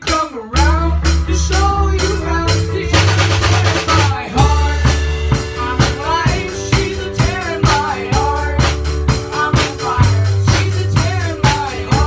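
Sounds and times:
live rock band playing: 0.0s - 12.0s
voices singing: 0.0s - 12.0s
quick run of drum hits: 2.5s - 8.0s.

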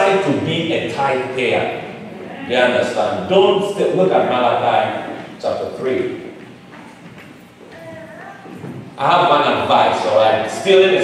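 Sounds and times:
hard-soled footsteps on floor: 6.3s - 8.9s.

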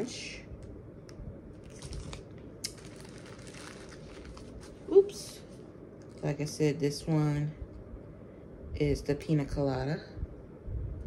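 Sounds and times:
plastic packets crinkling: 1.6s - 5.4s.

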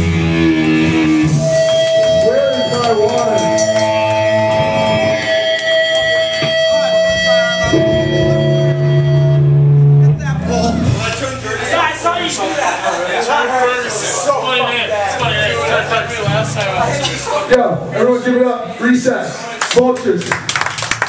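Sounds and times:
amplifier feedback: 0.0s - 12.6s
electric guitars ringing: 0.0s - 17.3s.

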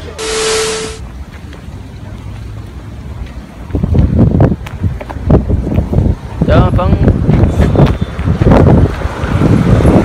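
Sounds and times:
burst of static hiss: 0.2s - 1.0s
steady hum tone: 0.2s - 1.0s
wind rumble on microphone: 3.0s - 10.0s.

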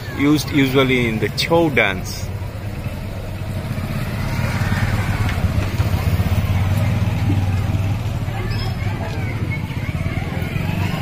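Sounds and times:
engine idling: 0.0s - 11.0s
faint voices: 0.0s - 11.0s.

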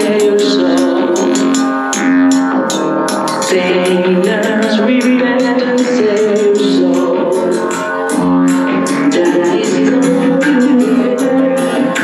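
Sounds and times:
dub music through sound system: 0.0s - 12.0s.

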